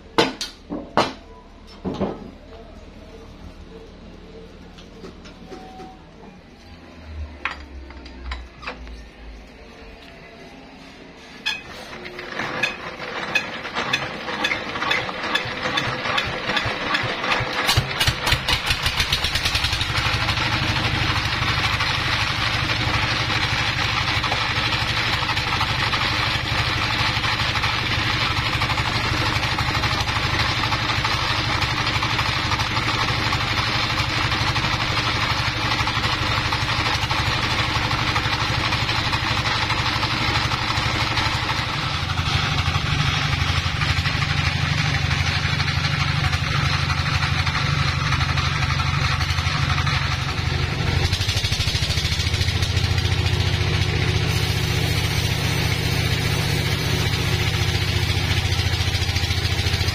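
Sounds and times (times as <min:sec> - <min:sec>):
diesel engine starting and running: 0:03.0 - 0:59.9.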